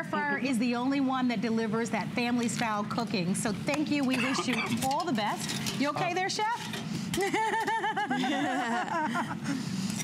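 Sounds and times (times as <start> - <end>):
people laughing: 7.2 - 9.6.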